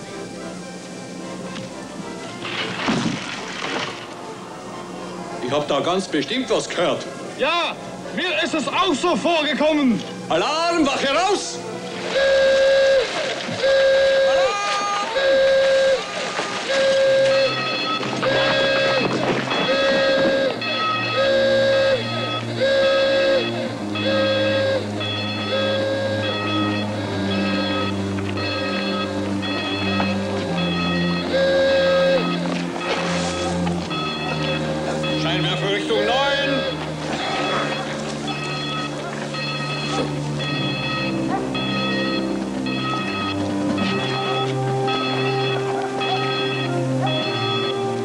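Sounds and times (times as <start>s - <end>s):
dramatic music: 7.8s - 48.0s
alarm buzzing blasts: 12.1s - 48.0s.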